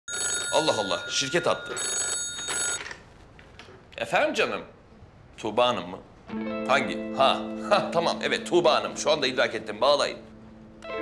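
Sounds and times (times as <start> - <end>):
desk telephone bell ringing: 0.1 - 3.0.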